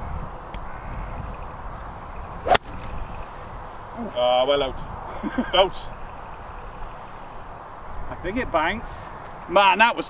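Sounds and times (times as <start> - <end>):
golf club striking ball: 2.4 - 3.0
golf club swish: 2.4 - 3.0.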